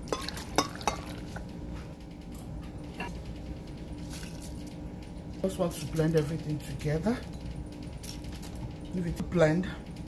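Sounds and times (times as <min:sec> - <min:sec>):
bowl clinking against glass jar: 0:00.1 - 0:01.4.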